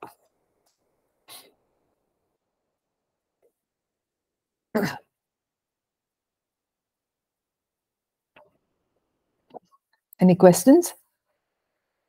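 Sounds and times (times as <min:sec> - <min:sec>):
person clearing throat: 0:04.8 - 0:05.1.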